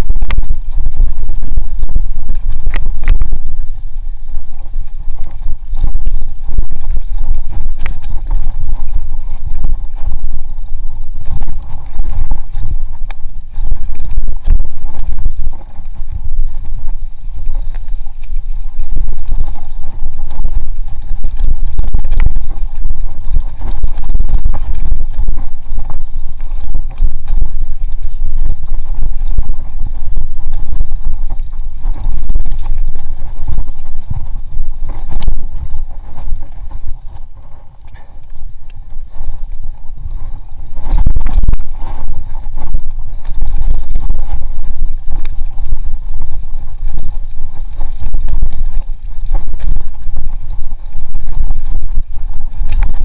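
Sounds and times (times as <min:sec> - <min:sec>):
mountain bike rumble and rattle: 0:00.0 - 0:53.0
wind buffeting microphone: 0:00.0 - 0:53.0.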